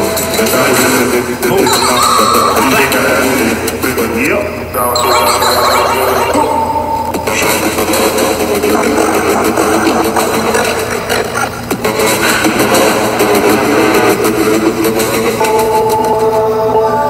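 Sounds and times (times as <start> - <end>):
electronic industrial music: 0.0 - 17.0.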